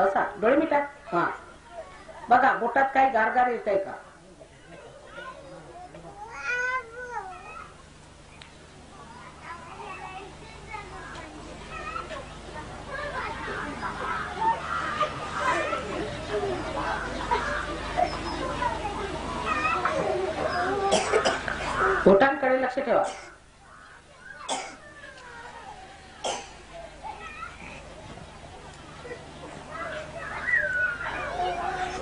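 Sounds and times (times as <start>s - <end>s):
low background murmur: 0.0s - 32.0s.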